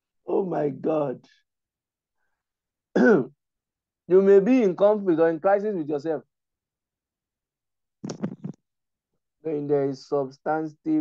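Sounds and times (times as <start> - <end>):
man clearing throat: 3.0 - 3.3.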